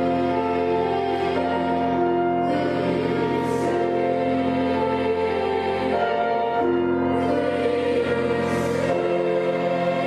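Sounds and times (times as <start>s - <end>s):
boys' choir singing: 0.0s - 10.0s.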